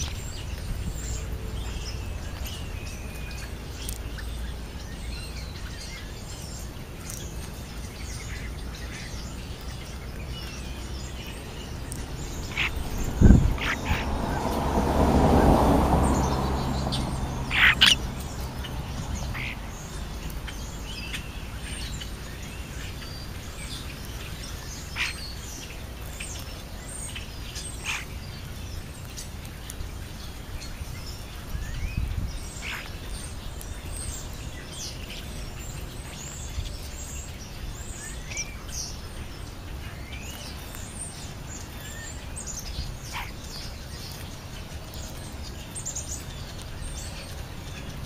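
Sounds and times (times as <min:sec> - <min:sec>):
starlings chirping and whistling: 0:00.0 - 0:48.0
rush of noise: 0:11.3 - 0:21.0.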